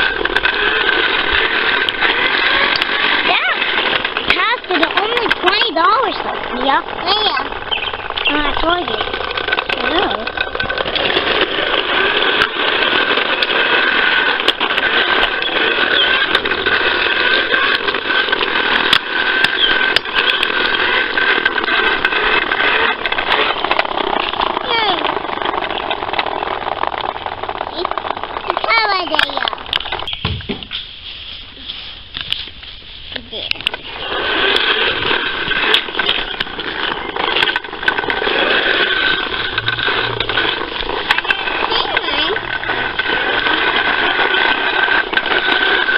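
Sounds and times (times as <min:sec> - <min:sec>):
toy lawnmower mechanical noise: 0:00.0 - 0:30.4, 0:31.8 - 0:45.9.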